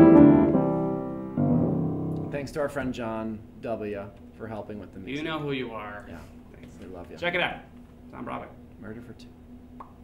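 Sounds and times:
grand piano chords: 0:00.0 - 0:02.8.

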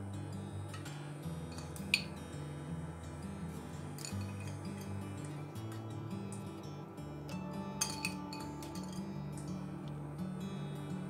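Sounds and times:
background music: 0:00.0 - 0:11.0
glass bowl clinking on baking dish: 0:07.8 - 0:09.0.

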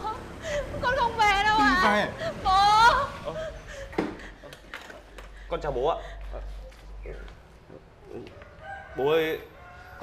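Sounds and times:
rooster crowing: 0:08.2 - 0:10.0.

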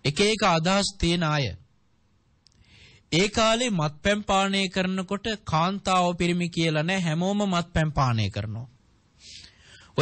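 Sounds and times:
man preaching: 0:00.0 - 0:01.6, 0:03.1 - 0:08.7
mouth click: 0:02.4 - 0:02.7
breath hiss: 0:09.2 - 0:10.0.

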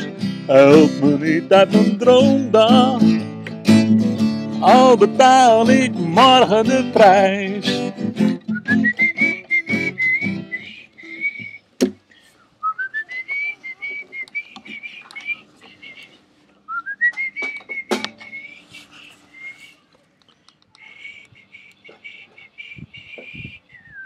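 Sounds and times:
guitar strums: 0:00.0 - 0:10.6, 0:17.2 - 0:18.5
man whistling a melody: 0:05.6 - 0:11.7, 0:12.6 - 0:19.9, 0:20.8 - 0:24.0.

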